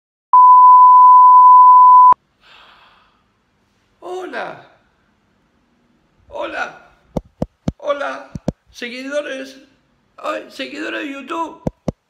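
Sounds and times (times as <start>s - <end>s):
steady reference tone beep: 0.4s - 2.2s.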